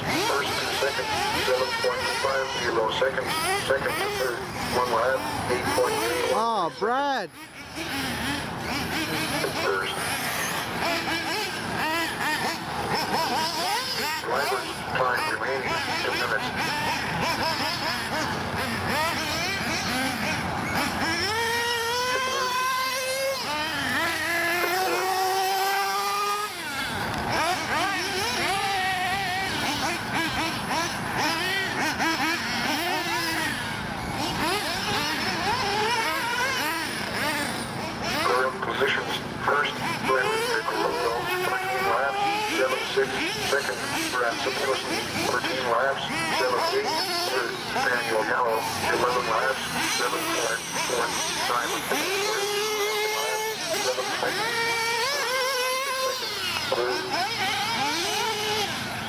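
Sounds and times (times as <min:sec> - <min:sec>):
small rc engines revving: 0:00.0 - 0:59.0.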